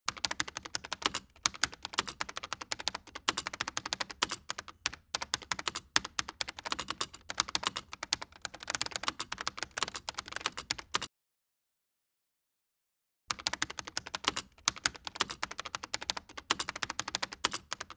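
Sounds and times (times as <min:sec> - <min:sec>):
computer keyboard typing: 0:00.1 - 0:11.1, 0:13.3 - 0:17.9.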